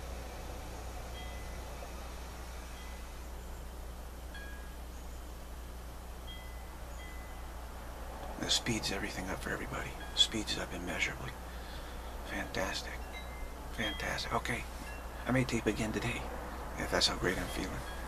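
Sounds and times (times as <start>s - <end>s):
background hiss: 0.0s - 18.0s
faint high ringing notes: 0.0s - 18.0s
steady low hum: 0.0s - 18.0s.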